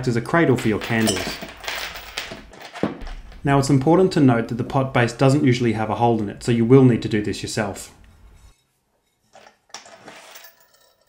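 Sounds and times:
clinks of flower pots and hardware: 0.7 - 1.6.

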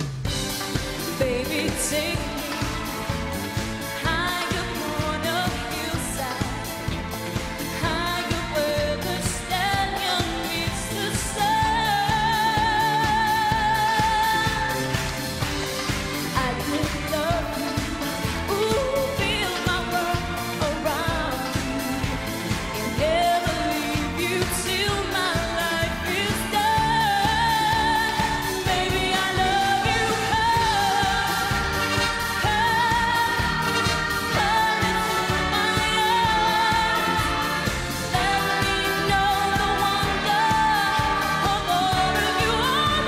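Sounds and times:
backing track with dance beat: 0.0 - 43.0
woman singing into microphone: 1.0 - 43.0.

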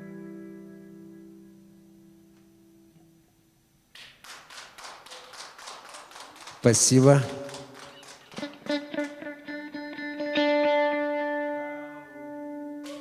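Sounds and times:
guitar chord ringing: 0.0 - 3.3, 8.4 - 13.0
audience clapping: 3.9 - 9.4.

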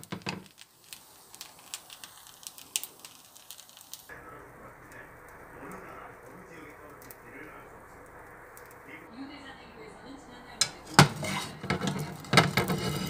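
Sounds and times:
rice frying and crackling: 0.0 - 13.0
dull muffled murmur: 4.1 - 13.0.

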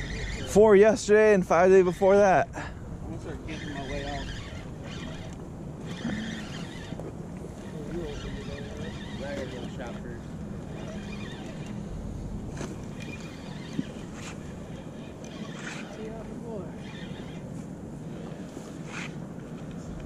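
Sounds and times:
spinning reel cranking: 3.4 - 7.0, 7.6 - 11.8, 12.9 - 17.5.

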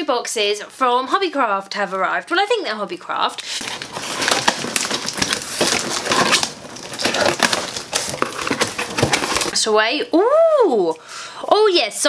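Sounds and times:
cardboard rustling: 3.4 - 9.6
plastic wrapping crinkling: 3.4 - 9.6.

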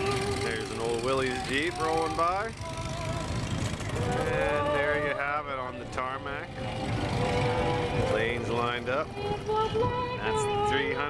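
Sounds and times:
steady low rumble: 0.0 - 10.9.

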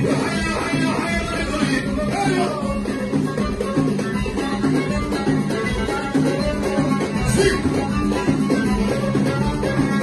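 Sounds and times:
keyboard: 0.0 - 10.0
percussion: 0.0 - 10.0
violin: 0.3 - 10.0.

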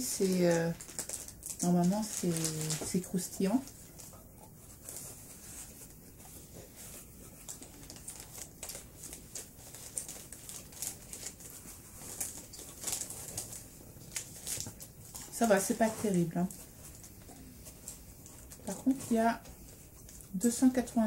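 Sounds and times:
plastic wrapper crinkling: 0.0 - 6.0, 6.9 - 21.0.

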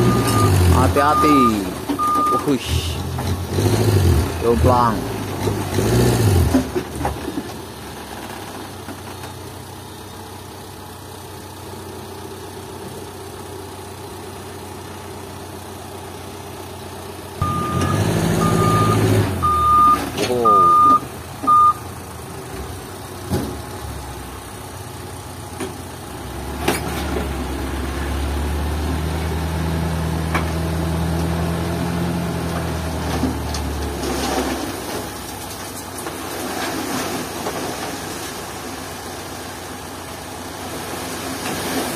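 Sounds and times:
reversing beeps: 0.0 - 2.5, 17.4 - 21.8
truck engine idling and revving: 0.0 - 41.9.

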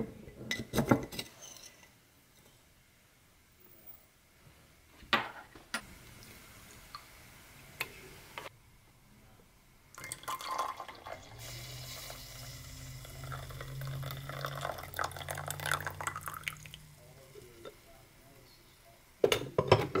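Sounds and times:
coffee pouring into mug: 9.9 - 17.7.

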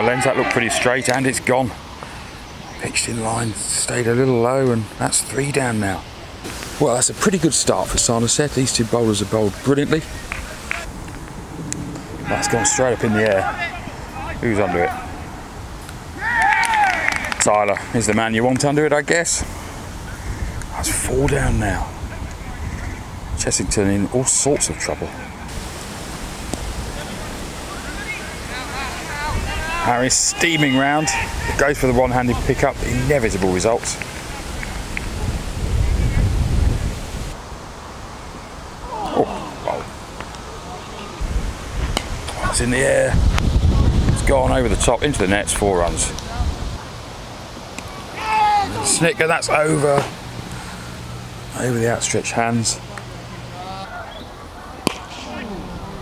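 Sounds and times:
distant shouts of players: 0.0 - 1.5, 12.0 - 17.9, 26.8 - 33.4, 38.8 - 41.4, 47.8 - 50.1, 53.0 - 56.0
wind on microphone: 10.0 - 14.4, 19.4 - 24.0, 34.3 - 37.4, 41.2 - 46.9.

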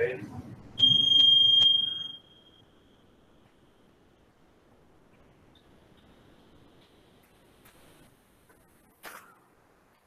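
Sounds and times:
high-pitched electronic alert beep: 0.8 - 2.6.

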